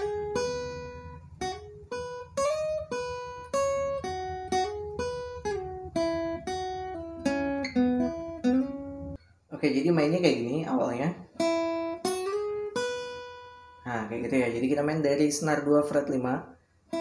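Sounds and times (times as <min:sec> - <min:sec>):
acoustic guitar plucked melody: 0:00.0 - 0:17.0.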